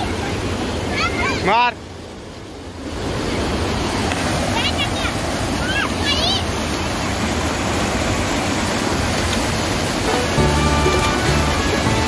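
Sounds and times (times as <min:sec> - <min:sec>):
water rushing over a weir: 0:00.0 - 0:12.0
background music with low bass: 0:10.1 - 0:12.0.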